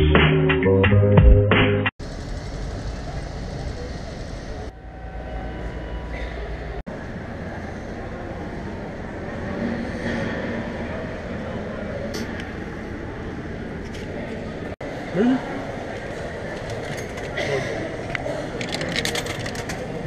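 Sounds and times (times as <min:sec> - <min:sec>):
station rumble: 0:02.0 - 0:09.4.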